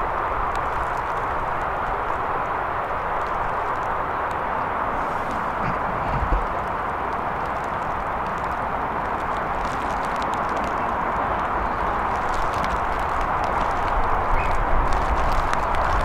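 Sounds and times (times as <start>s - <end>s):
rushing outdoor background noise: 0.0s - 16.0s.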